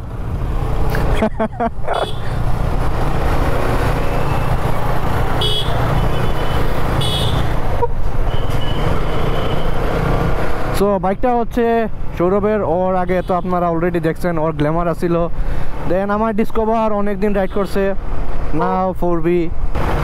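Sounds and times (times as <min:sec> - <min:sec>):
traffic: 0:00.0 - 0:20.0
high horn toots: 0:05.4 - 0:07.5.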